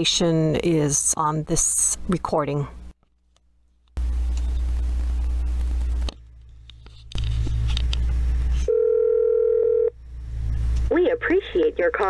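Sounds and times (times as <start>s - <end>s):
low hum and line noise: 0.0s - 12.0s
telephone line beep: 8.7s - 9.9s.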